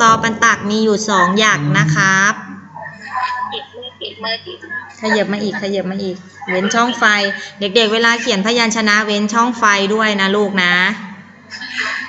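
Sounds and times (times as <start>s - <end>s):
person speaking: 0.0s - 8.7s
room noise through video call: 0.0s - 12.0s
faint background voices: 1.2s - 8.4s, 9.9s - 12.0s.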